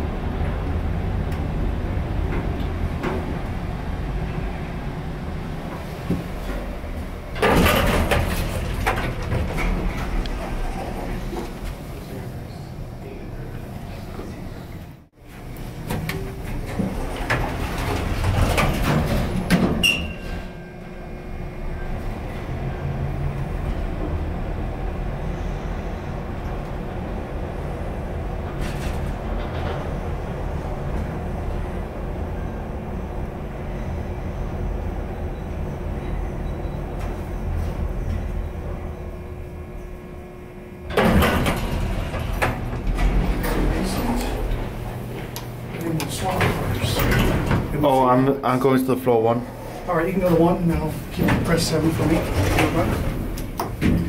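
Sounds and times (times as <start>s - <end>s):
elevator doors sliding: 0.0s - 54.0s
elevator low hum: 0.0s - 54.0s.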